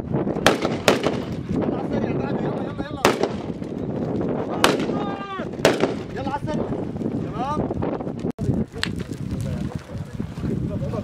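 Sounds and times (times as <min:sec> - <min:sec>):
sharp gunshots: 0:00.4 - 0:01.5, 0:03.0 - 0:03.7, 0:04.5 - 0:06.4.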